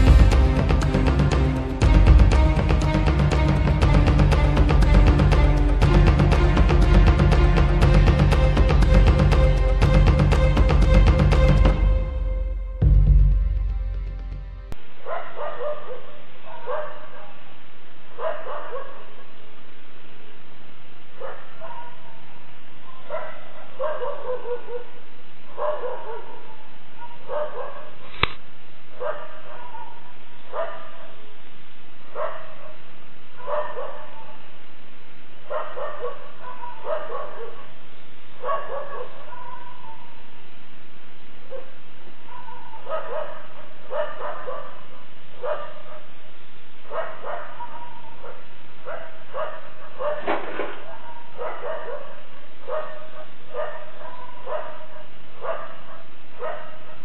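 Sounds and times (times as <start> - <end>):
dog barking: 15.0 - 17.5, 18.1 - 19.4, 21.2 - 28.2, 28.9 - 31.2, 32.1 - 34.5, 35.5 - 37.8, 38.4 - 40.2, 41.5 - 46.2, 46.8 - 57.0
sharp click: 28.1 - 28.4.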